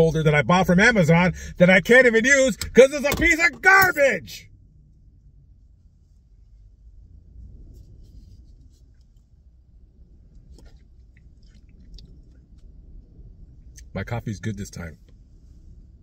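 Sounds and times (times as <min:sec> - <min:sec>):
low steady rumble: 0:00.0 - 0:16.0
coffee sipping slurps: 0:10.6 - 0:12.4.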